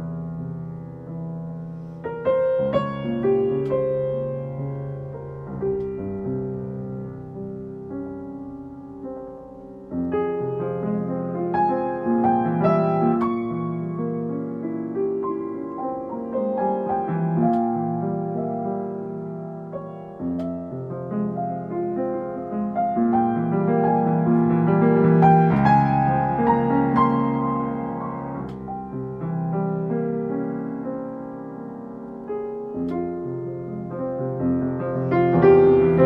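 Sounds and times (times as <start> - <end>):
solo piano playing slowly: 0.0 - 36.0.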